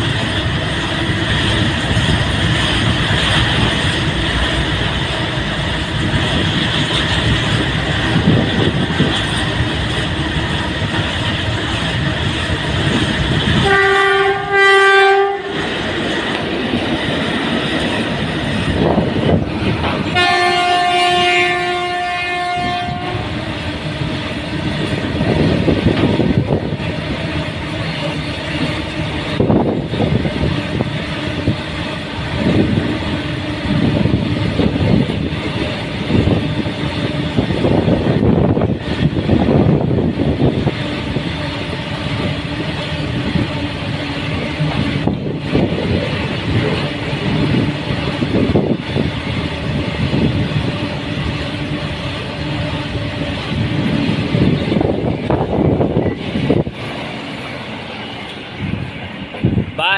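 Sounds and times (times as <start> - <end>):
train wheels clattering on rail: 0.0 - 59.8
locomotive horn blasts: 13.6 - 15.6, 20.1 - 23.3.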